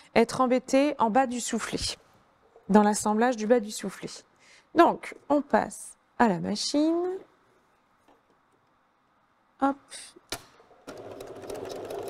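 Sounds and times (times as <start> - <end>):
electric sewing machine stitching: 10.8 - 12.0.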